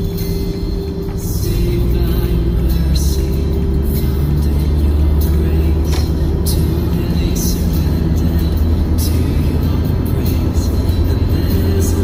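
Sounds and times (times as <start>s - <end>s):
car driving rumble: 0.0s - 12.0s
music playing: 0.0s - 12.0s.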